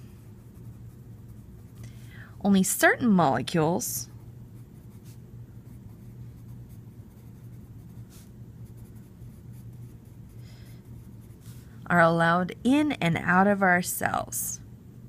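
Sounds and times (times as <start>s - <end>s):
pencil scratching on paper: 0.2s - 1.8s, 4.6s - 11.7s.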